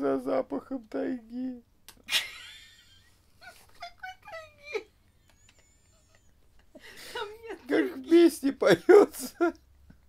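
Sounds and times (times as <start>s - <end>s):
man laughing: 2.0s - 9.6s.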